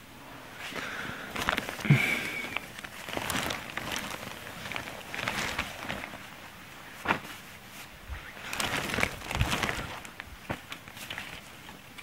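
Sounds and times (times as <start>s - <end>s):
plastic bag crinkling: 0.7s - 12.0s.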